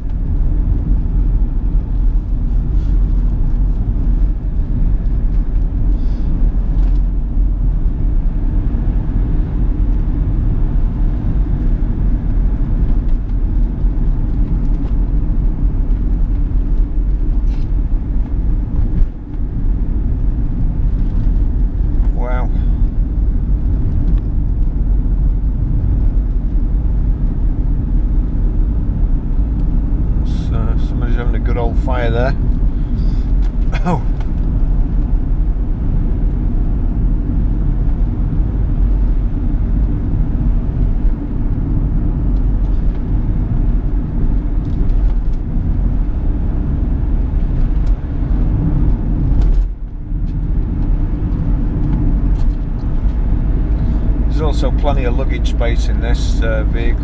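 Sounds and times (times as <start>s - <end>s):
in-cabin engine and tyre rumble: 0.0s - 57.0s.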